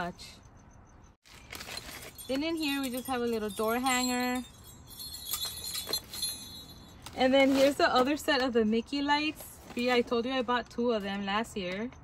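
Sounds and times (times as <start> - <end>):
newspaper and plastic rustling: 1.3 - 4.3, 5.3 - 10.6.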